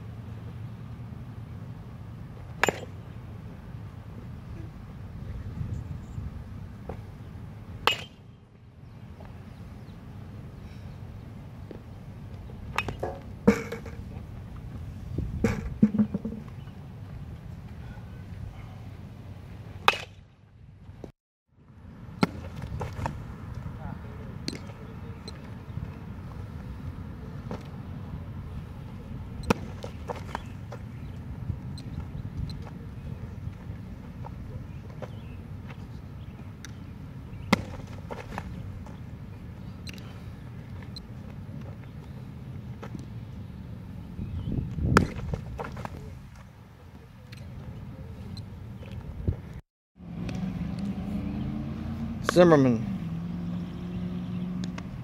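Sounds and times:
baseballs smacking into a mitt: 7.8 - 8.2, 19.9 - 20.2, 22.2 - 23.7, 29.5 - 30.8, 37.5 - 38.6, 44.7 - 46.1.

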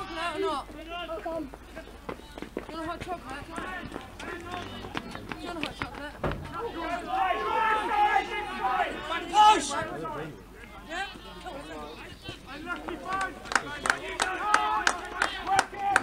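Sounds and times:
running footsteps: 0.0 - 8.6, 10.8 - 16.0
players shouting: 0.0 - 16.0
loud thump: 6.1 - 6.7.

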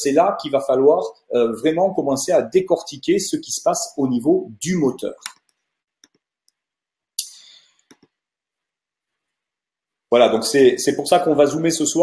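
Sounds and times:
soft computer mouse clicks: 5.2 - 6.6, 7.8 - 8.2.

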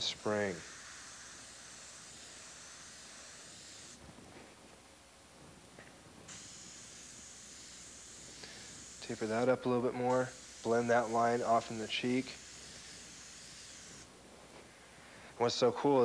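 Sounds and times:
airbrush hissing: 0.0 - 4.3, 6.3 - 15.4.

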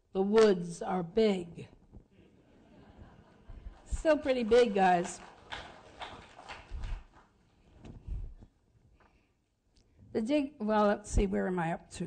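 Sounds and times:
audience laughter: 2.3 - 3.8.

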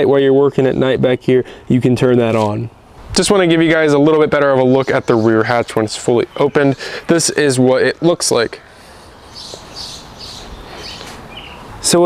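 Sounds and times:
low outdoor background noise: 0.0 - 12.0
songbird chirping: 2.4 - 12.0.

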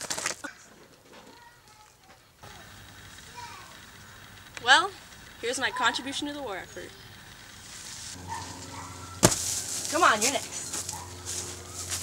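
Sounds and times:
person landing with loud impact: 9.2 - 9.6.

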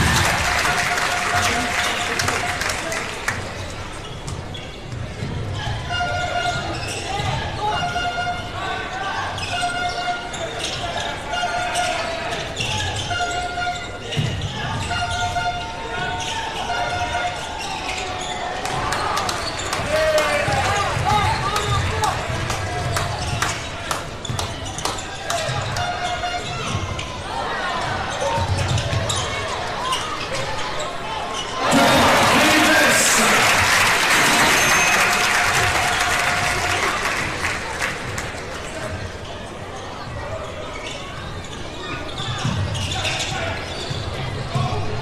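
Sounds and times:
sneakers squeaking: 3.4 - 33.0, 34.2 - 45.0.

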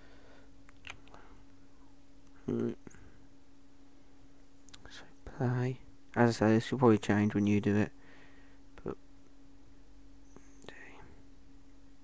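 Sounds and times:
low electrical hum: 0.0 - 12.0
person whispering: 2.4 - 3.0, 4.7 - 5.6, 10.6 - 11.2.

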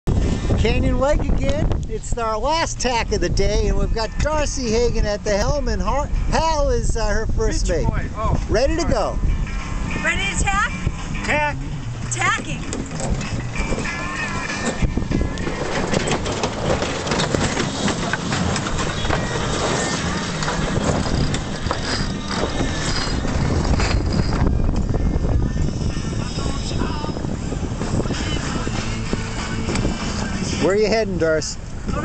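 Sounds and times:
wind: 0.0 - 32.0
deck noise on sailboat: 0.1 - 32.0
sheet winch clicking: 14.5 - 24.9.

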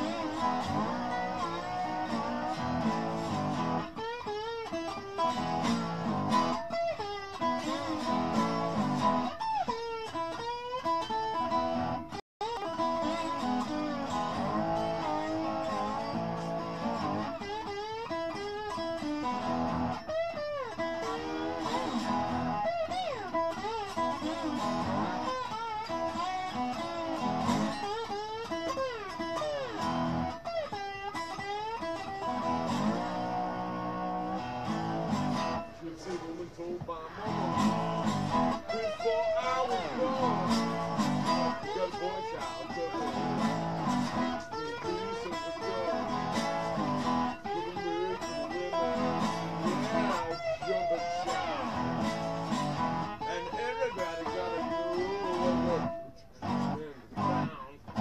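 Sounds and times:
overdriven slide guitar blues: 0.0 - 58.0.

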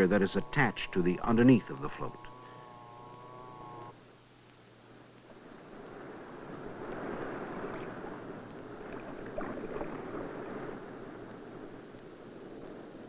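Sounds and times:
water rushing: 5.7 - 11.7.

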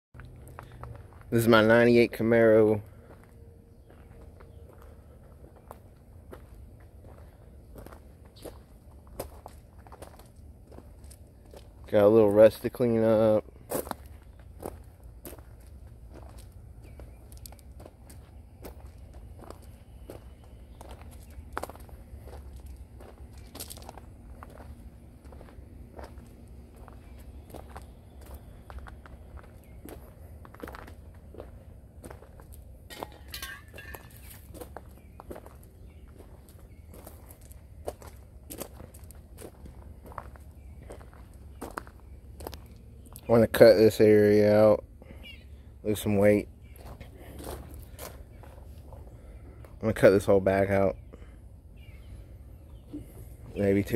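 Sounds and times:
footsteps crunching on gravel: 0.2 - 45.2, 45.9 - 50.8.

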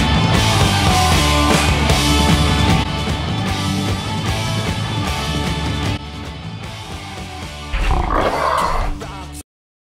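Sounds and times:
rock music: 0.0 - 9.4
animal roar: 7.7 - 9.0.

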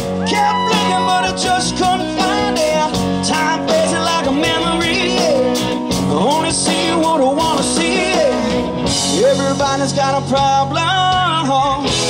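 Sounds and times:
live country-rock band: 0.0 - 12.0
sliding lead guitar line: 0.0 - 12.0.

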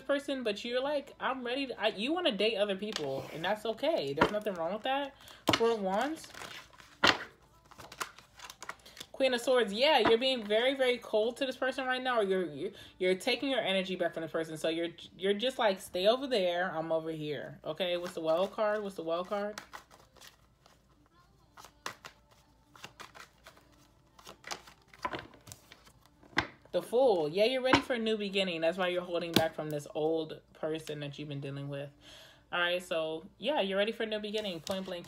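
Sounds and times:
cards being shuffled: 2.8 - 9.2, 17.8 - 26.7, 34.4 - 35.0.

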